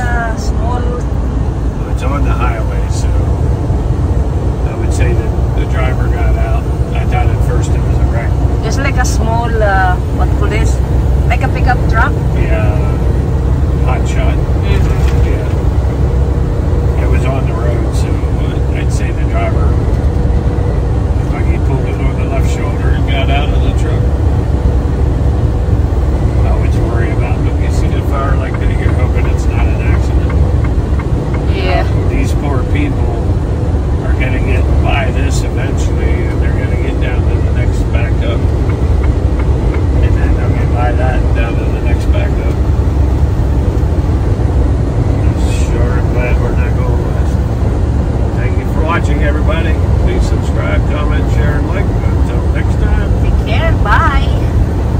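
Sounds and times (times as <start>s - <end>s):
vehicle road and engine rumble: 0.0s - 54.9s.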